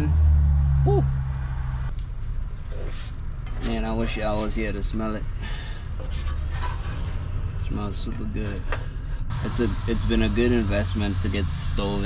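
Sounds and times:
man talking: 0:09.3 - 0:12.0.

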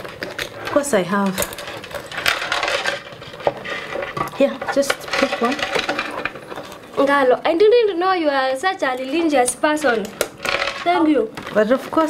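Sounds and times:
hands rummaging through a handbag: 0:00.0 - 0:07.2.

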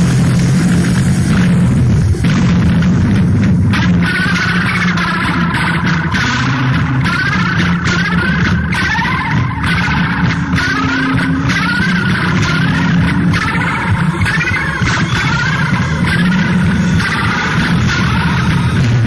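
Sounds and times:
continuous low drone: 0:00.0 - 0:19.0
warbling tones: 0:00.0 - 0:19.0.

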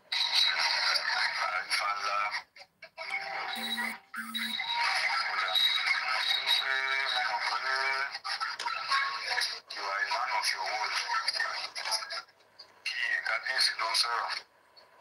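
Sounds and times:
music from phone speaker: 0:03.1 - 0:04.6
short electronic tones: 0:03.6 - 0:04.7.

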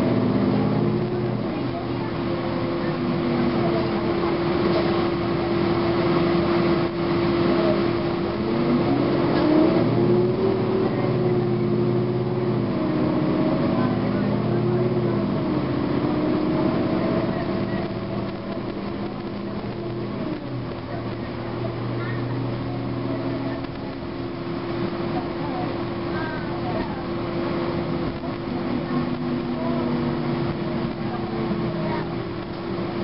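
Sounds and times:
bus diesel engine whine: 0:00.0 - 0:33.0.

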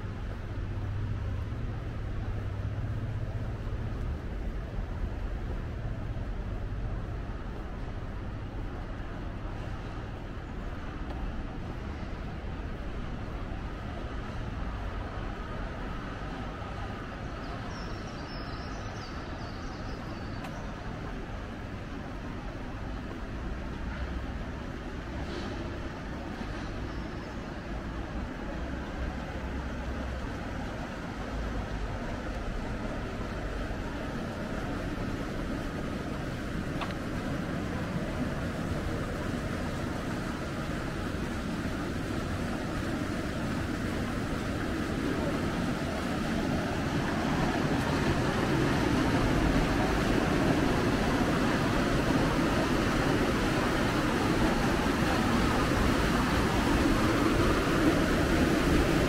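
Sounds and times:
distant road traffic rumble: 0:00.0 - 0:59.0.

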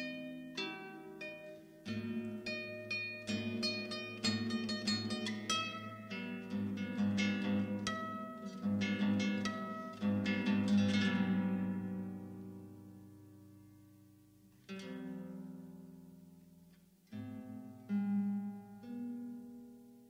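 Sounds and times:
solo classical guitar: 0:00.0 - 0:20.0.

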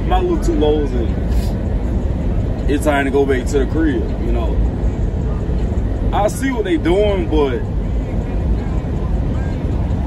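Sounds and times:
vehicle rumble from inside cab: 0:00.0 - 0:10.0.

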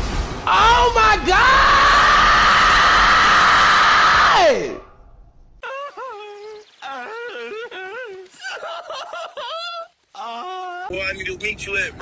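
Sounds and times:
man screaming: 0:00.5 - 0:04.9.

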